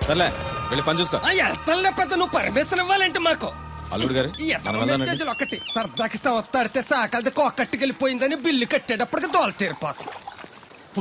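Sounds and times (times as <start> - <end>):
high electronic beeps: 3.9 - 6.3.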